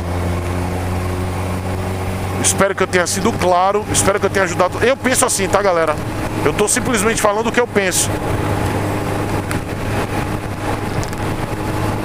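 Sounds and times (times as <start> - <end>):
motorcycle engine cruising: 0.0 - 12.0
road and wind noise: 0.0 - 12.0.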